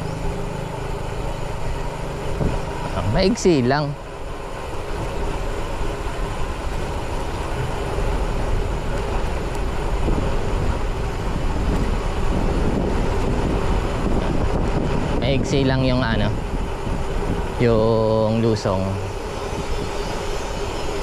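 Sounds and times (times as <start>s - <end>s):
bicycle tyres rolling on concrete: 0.0s - 21.0s
wind noise on microphone: 2.2s - 3.3s, 4.8s - 21.0s.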